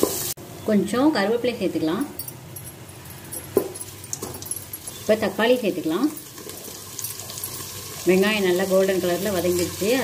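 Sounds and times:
food sizzling in oil: 0:00.0 - 0:00.4, 0:03.8 - 0:10.0.

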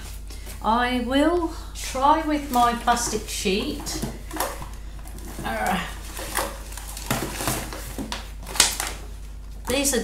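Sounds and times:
plastic sheet rustling and crackling: 0:02.3 - 0:10.0.

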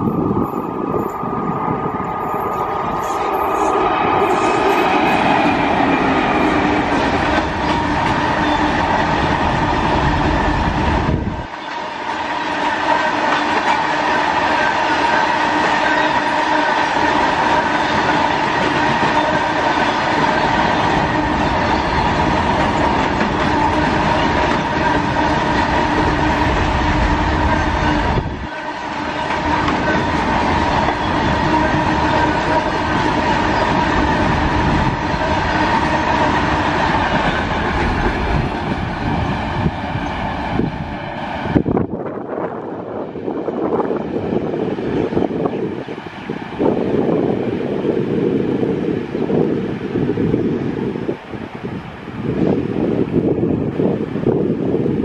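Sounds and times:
steady ringing tone: 0:00.0 - 0:05.7
wheels clickety-clack on rails: 0:00.0 - 0:42.6
freight train rolling past: 0:00.0 - 0:55.0.

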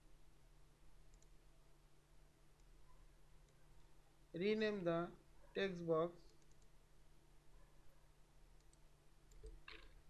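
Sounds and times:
computer mouse clicks: 0:01.1 - 0:01.4, 0:06.2 - 0:06.8, 0:08.6 - 0:10.0.

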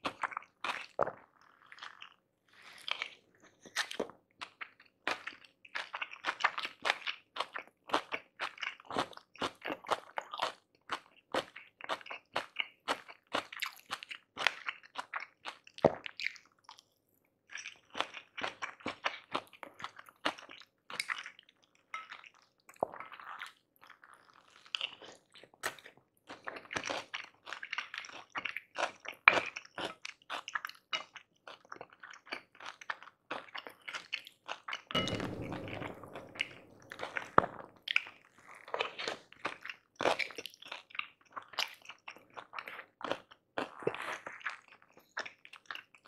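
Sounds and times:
chewing and crunching food: 0:00.0 - 0:34.9, 0:37.8 - 0:46.0.

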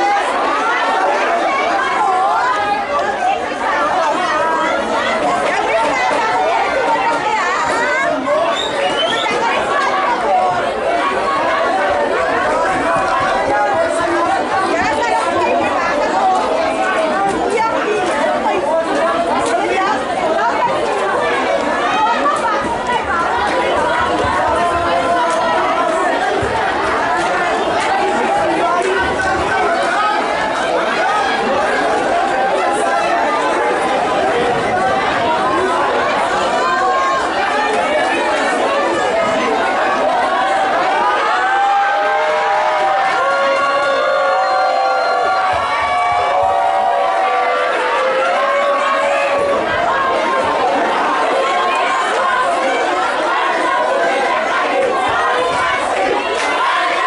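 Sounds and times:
crowd chatter: 0:00.0 - 0:57.0.

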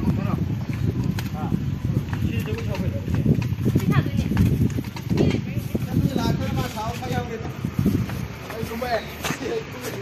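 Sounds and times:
rough low rumble with knocks: 0:00.0 - 0:08.6.

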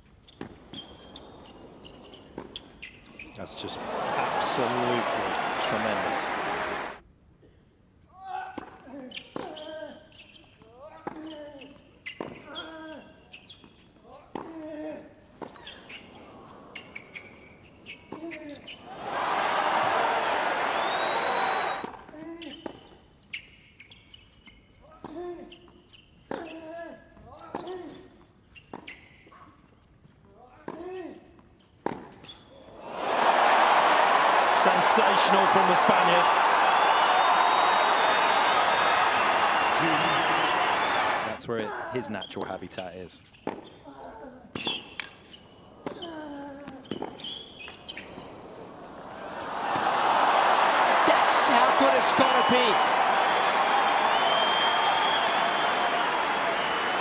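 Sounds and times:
crowd applause and cheering: 0:03.4 - 0:07.0, 0:18.9 - 0:21.9, 0:32.7 - 0:41.4, 0:48.8 - 0:57.0
players grunting: 0:03.4 - 0:07.0, 0:32.8 - 0:41.4, 0:49.5 - 0:53.2.

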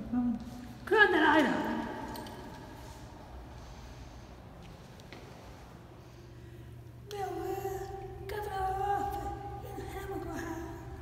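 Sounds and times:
voice echo: 0:00.0 - 0:03.2, 0:06.1 - 0:11.0
faint steady background noise: 0:00.0 - 0:11.0.

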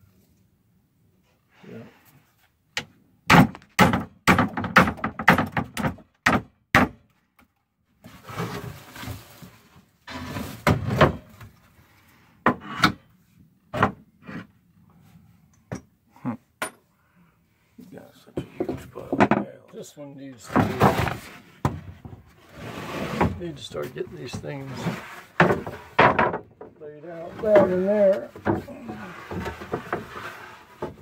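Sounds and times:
wooden boards knocking: 0:03.3 - 0:07.0, 0:25.4 - 0:26.8.

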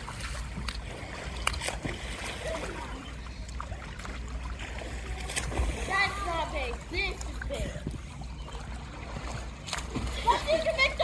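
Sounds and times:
pool water splashing: 0:00.0 - 0:11.0.

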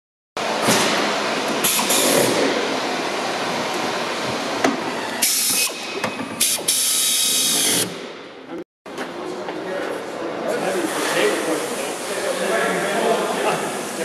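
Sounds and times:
workshop background noise: 0:00.4 - 0:14.0
pneumatic tool hissing: 0:01.6 - 0:02.4, 0:05.2 - 0:05.8, 0:06.4 - 0:08.0.

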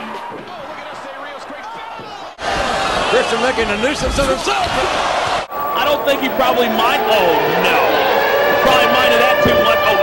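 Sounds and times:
crowd noise: 0:04.0 - 0:10.0
commentary: 0:05.5 - 0:10.0.

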